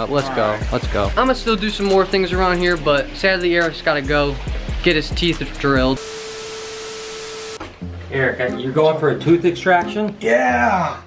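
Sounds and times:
static hiss: 5.9 - 7.7
steady electronic tone: 6.0 - 7.7.

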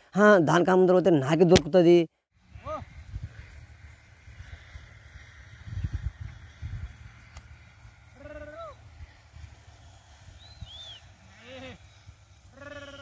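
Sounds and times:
sheep bleating: 8.1 - 8.8, 11.2 - 11.8, 12.5 - 13.0.

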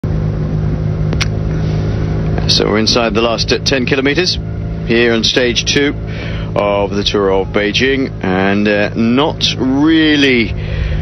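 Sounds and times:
engine drone: 0.0 - 11.0
wind and road noise: 0.0 - 11.0
short click: 1.1 - 1.4.

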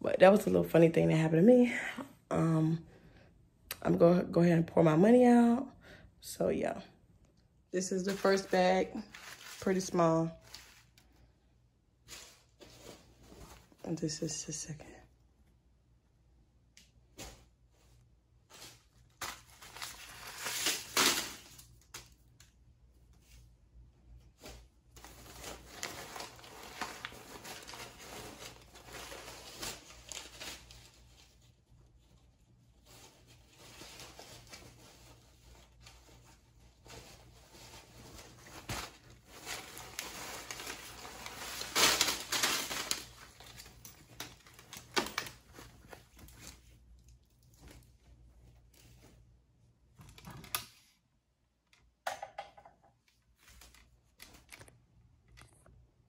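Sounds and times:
paper bills rustling and crinkling: 8.0 - 11.2.

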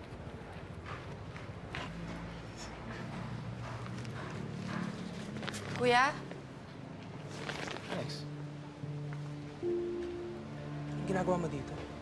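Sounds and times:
low steady hum: 8.1 - 12.0.

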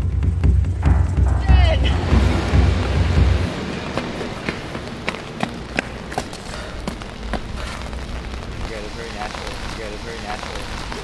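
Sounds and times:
loud low hum: 0.0 - 10.6
rain on wet pavement: 1.5 - 11.0.

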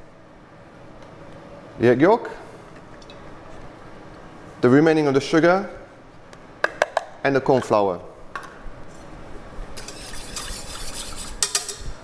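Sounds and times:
wire whisk scraping metal bowl: 9.8 - 11.9.

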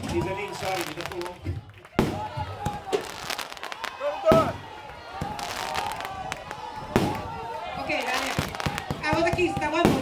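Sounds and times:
people talking: 0.0 - 1.4, 9.0 - 10.0
fireworks bangs: 0.0 - 10.0
fireworks crackling: 0.0 - 10.0.

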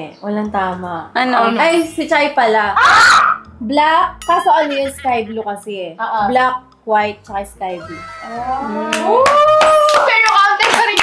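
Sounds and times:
high voice whooping: 8.1 - 10.1
people clapping: 8.8 - 11.0.

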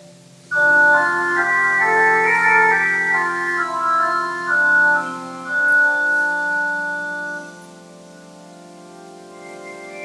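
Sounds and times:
organ playing slow chords: 0.0 - 10.0.

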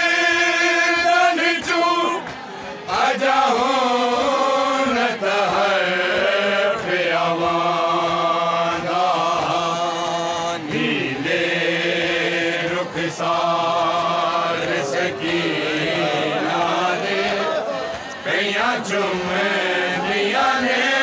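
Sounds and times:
men chanting a lament: 0.0 - 21.0.

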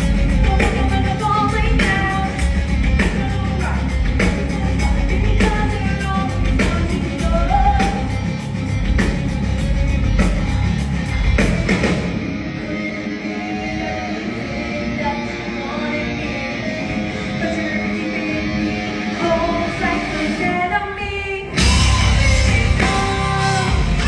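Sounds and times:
person singing: 0.0 - 8.2, 12.5 - 24.0
drums and cymbals: 0.0 - 12.9, 21.5 - 24.0
guitar: 0.0 - 24.0
rock band playing live: 0.0 - 24.0.

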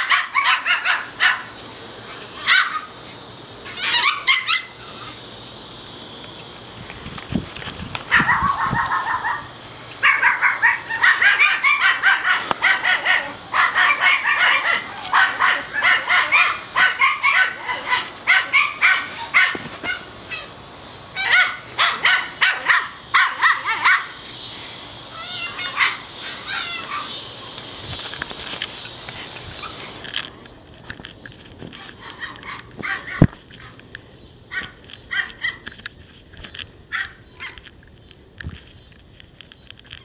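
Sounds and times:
puppies yapping: 0.0 - 5.3, 8.0 - 24.3, 25.1 - 30.1, 31.6 - 33.8, 34.5 - 35.7.

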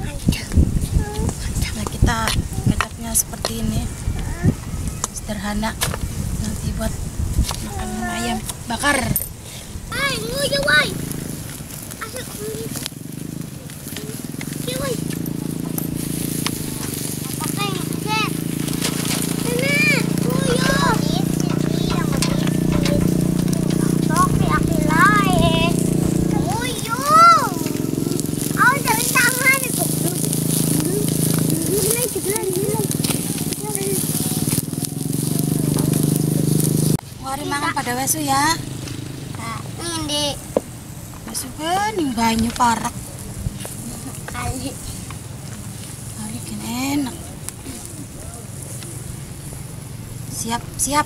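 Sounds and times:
chicken sizzling over wood fire: 0.0 - 51.0
children calling out: 3.8 - 5.2, 7.6 - 8.5, 9.8 - 12.9, 13.5 - 38.5, 39.4 - 40.5
steady low hum: 15.0 - 34.0.

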